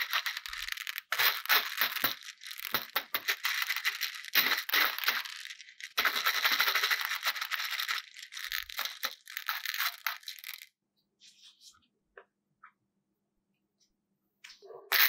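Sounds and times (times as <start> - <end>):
hard candies clicking and rattling: 0.0 - 10.7.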